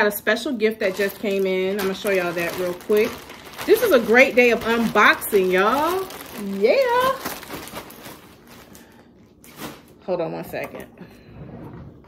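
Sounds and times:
clothes and plastic bag rustling: 0.6s - 10.8s.

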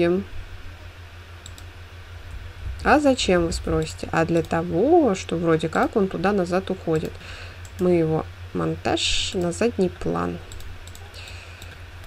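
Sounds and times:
woman speaking: 0.0s - 0.3s, 2.8s - 7.2s, 7.8s - 10.5s
low steady hum: 0.0s - 12.0s
computer mouse click: 1.4s - 1.7s, 10.5s - 11.8s.

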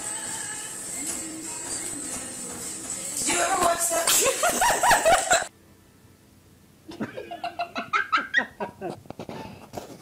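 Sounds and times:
person laughing in bursts: 4.1s - 5.5s, 6.9s - 9.0s.

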